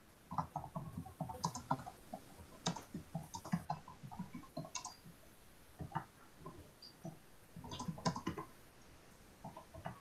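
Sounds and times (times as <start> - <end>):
computer keyboard key clicks: 4.6 - 5.0.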